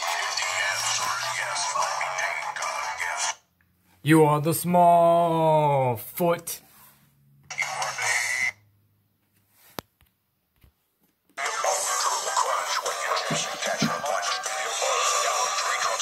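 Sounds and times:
music: 0.0 - 3.4, 11.4 - 16.0.

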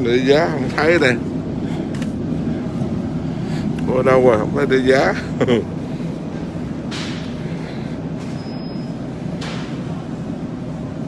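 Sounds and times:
low rumble of supermarket noise: 0.0 - 11.0.

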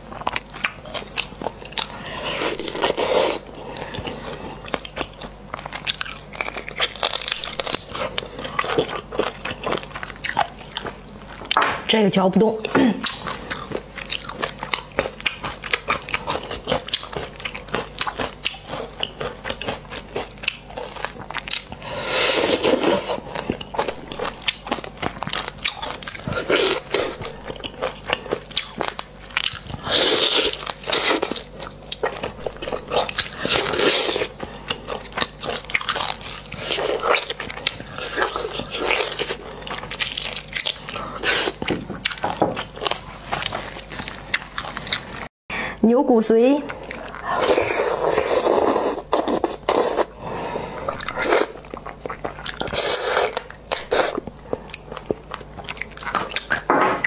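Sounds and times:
wet chewing and biting: 0.0 - 11.6, 13.0 - 45.3, 50.8 - 56.7.

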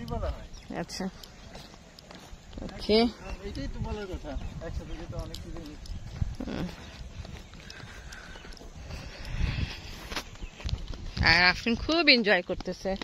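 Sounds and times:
footsteps on dirt path: 0.0 - 13.0
wind rumble on microphone: 2.4 - 13.0.

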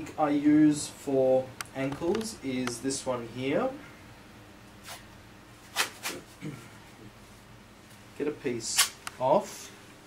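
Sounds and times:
sports tape rustling: 4.8 - 6.2
tape ripping: 8.8 - 9.0.

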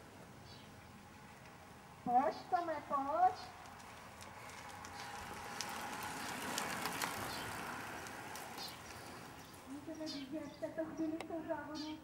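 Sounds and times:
bicycles passing by: 0.8 - 11.1
light bicycle clicks: 3.6 - 9.4.

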